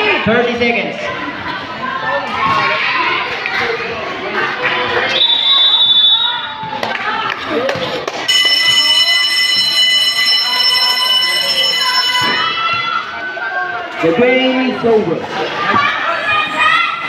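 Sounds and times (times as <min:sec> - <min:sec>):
crowd chatter: 0:00.0 - 0:17.0
high whistle blast: 0:05.1 - 0:06.5.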